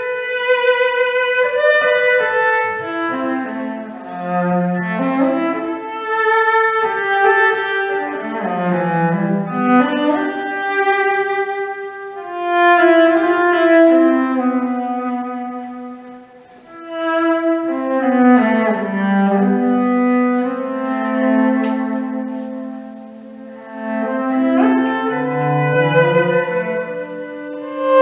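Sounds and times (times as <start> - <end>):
bowed cello melody: 0.0 - 28.0
looped cello phrases: 0.0 - 28.0.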